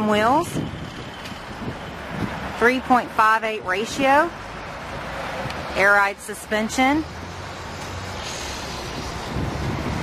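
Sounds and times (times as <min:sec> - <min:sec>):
wind noise on microphone: 0:00.0 - 0:04.2, 0:07.9 - 0:10.0.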